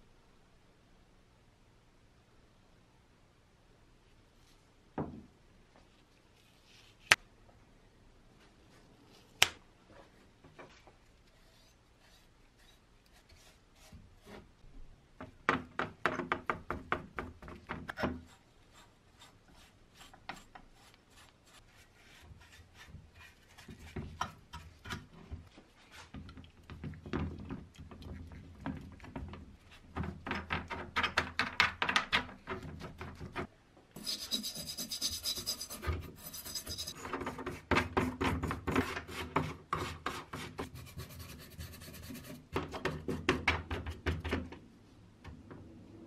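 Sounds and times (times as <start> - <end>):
paintbrush scrubbing metal: 11.3 - 14.5, 18.2 - 25.0, 34.0 - 37.0.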